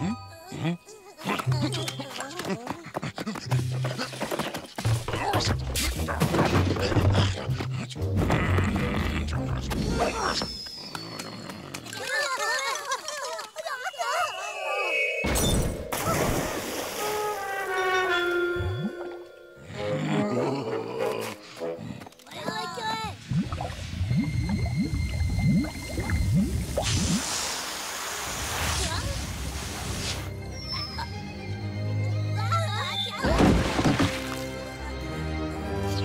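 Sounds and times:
cartoon music: 13.8 - 16.3.

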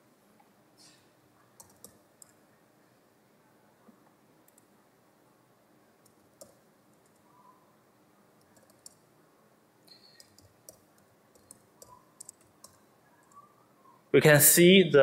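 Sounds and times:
keyboard keystroke clicks: 10.1 - 13.4.

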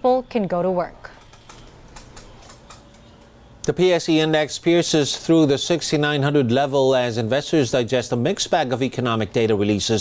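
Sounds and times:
low background hum: 0.0 - 10.0
keyboard typing clicks: 1.1 - 3.3.

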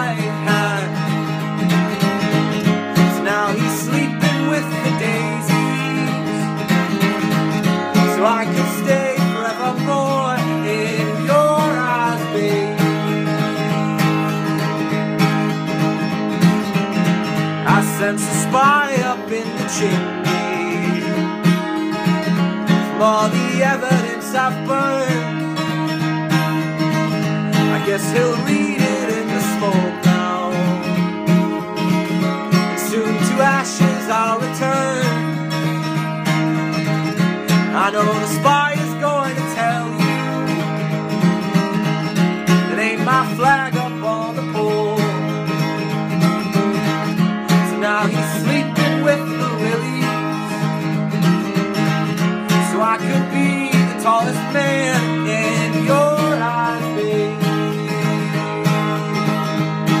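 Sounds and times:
man singing: 0.0 - 15.0, 17.6 - 25.9, 26.5 - 41.6, 42.4 - 59.8
acoustic guitar strummed and picked: 0.0 - 60.0.

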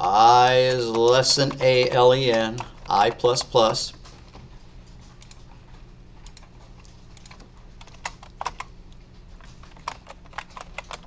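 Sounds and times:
computer keyboard typing: 0.0 - 4.0, 5.1 - 5.5, 6.2 - 8.7, 9.4 - 11.0
low steady hum: 0.0 - 11.0.

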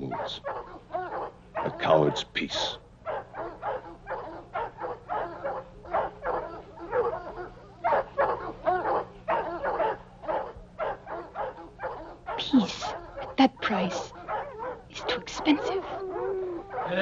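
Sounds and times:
dog barking and yelping: 0.0 - 17.0.

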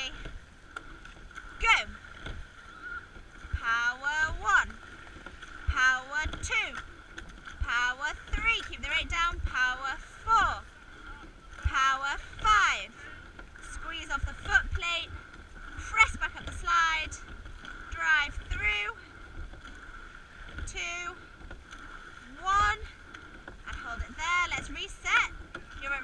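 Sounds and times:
oars knocking: 0.0 - 26.0
water rushing along hull: 0.0 - 26.0.

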